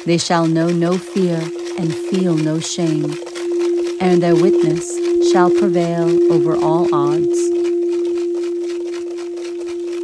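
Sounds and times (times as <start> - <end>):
crystal singing bowl ringing: 0.6 - 10.0.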